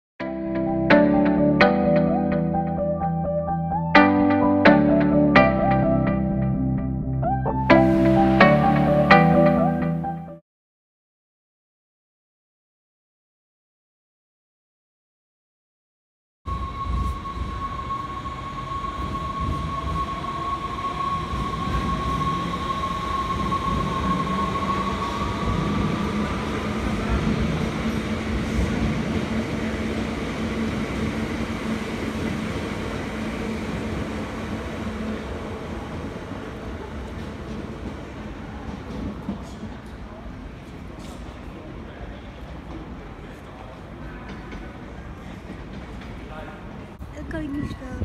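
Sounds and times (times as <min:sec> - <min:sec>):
electric train whine: 0:07.7 - 0:10.1, 0:16.5 - 0:47.0
train wheels rumbling on rails: 0:16.5 - 0:48.0.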